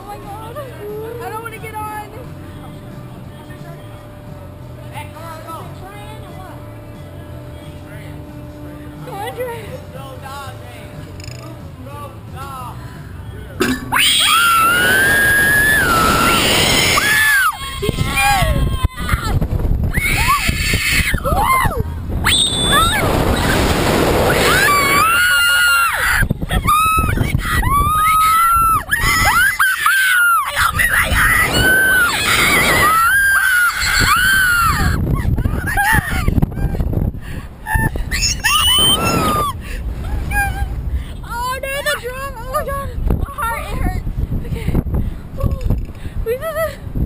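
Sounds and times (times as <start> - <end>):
wind rushing over microphone: 13.6 - 47.0
riders screaming: 13.9 - 36.1, 37.7 - 39.6.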